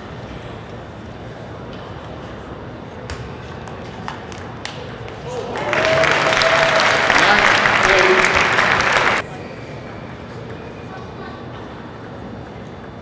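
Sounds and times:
crowd applause: 5.2s - 9.2s
table tennis ball pinging: 9.3s - 13.0s.

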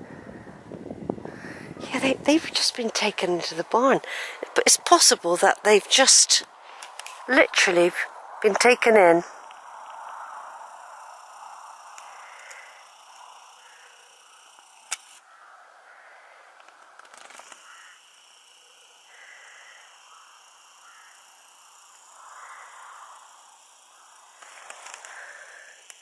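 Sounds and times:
faint countryside ambience: 0.0s - 26.0s.

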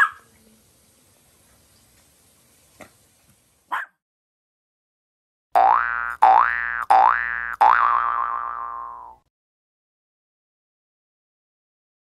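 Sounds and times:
cartoon boing sound effect: 5.6s - 9.3s.

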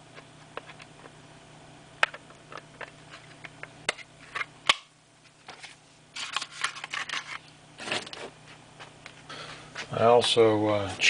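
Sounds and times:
packaging rustling: 5.4s - 8.3s.

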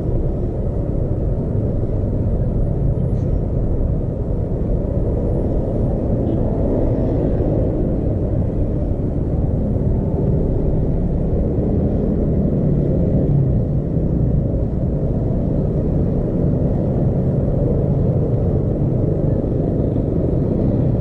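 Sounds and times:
traffic engines rumbling: 0.0s - 21.0s.

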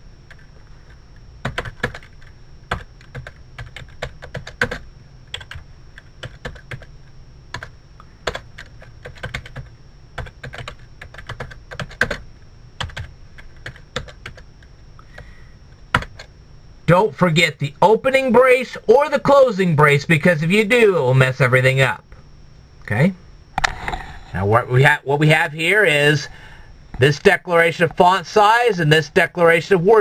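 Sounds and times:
faint low hum: 0.0s - 30.0s
keyboard typing: 0.3s - 6.9s, 7.5s - 12.2s, 12.8s - 14.4s, 15.9s - 16.3s.

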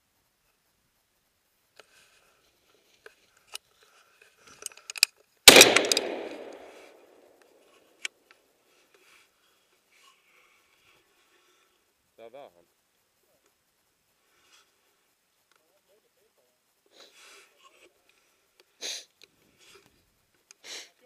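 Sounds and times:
faint clicks: 3.0s - 9.0s
loud gunshot with echo: 5.5s - 6.9s.

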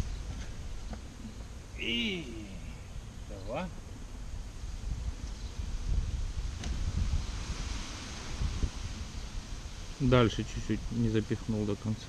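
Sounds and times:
leaves rustling: 0.0s - 12.0s
wind buffeting microphone: 0.0s - 12.0s.

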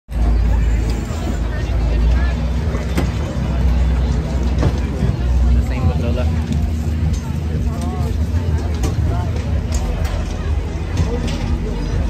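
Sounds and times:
crowd chatter: 0.1s - 12.0s
low machinery hum: 0.1s - 12.0s.

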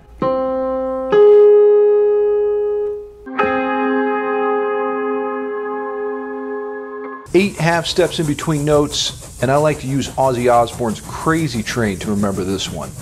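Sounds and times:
electronic keyboard notes: 0.0s - 7.3s.

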